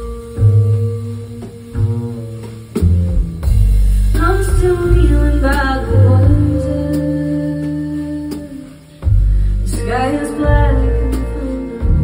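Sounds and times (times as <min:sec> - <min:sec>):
woman singing: 0:04.2 - 0:12.0.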